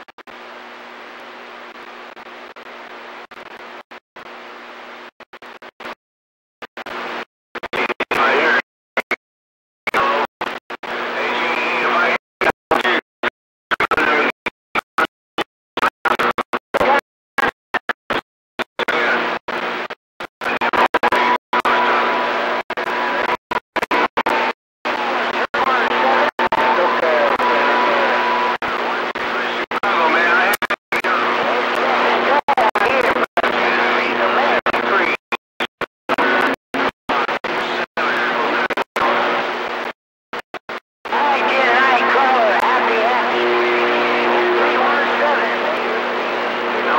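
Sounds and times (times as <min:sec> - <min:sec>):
radio static bursts: 0:09.9 - 0:13.0, 0:18.8 - 0:46.9.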